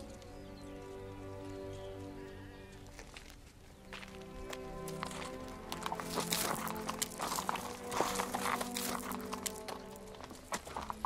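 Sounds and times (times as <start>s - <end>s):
film score with held notes: 0.0s - 11.0s.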